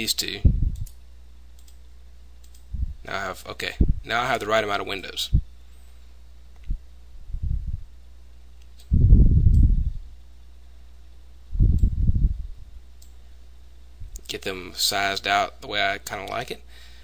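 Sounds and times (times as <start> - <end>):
steady low hum: 0.0 - 17.0
low muffled rushes: 0.4 - 0.9, 2.7 - 3.1, 3.7 - 4.1, 6.6 - 7.9, 8.9 - 10.2, 11.5 - 12.8
computer mouse clicks: 1.6 - 1.8, 2.4 - 2.7.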